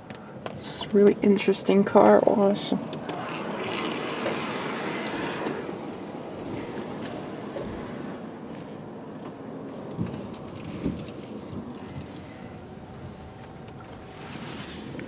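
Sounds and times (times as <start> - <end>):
car moving inside cabin: 0.0 - 15.0.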